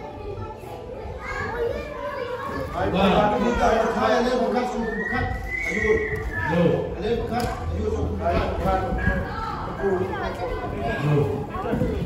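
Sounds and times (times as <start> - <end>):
children's voices: 0.0 - 4.4, 9.0 - 12.0
chatter of many voices: 0.0 - 12.0.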